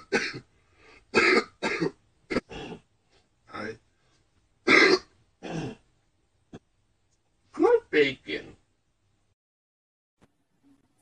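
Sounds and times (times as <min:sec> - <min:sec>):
person coughing: 0:00.0 - 0:00.5, 0:01.2 - 0:02.8, 0:04.7 - 0:05.8.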